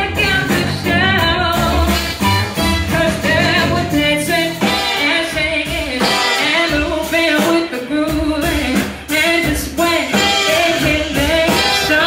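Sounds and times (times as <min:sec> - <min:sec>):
electric guitars: 0:00.0 - 0:06.8
drums: 0:00.0 - 0:12.0
woman singing: 0:00.0 - 0:12.0
horn section: 0:01.6 - 0:04.0, 0:04.6 - 0:07.0, 0:10.0 - 0:12.0.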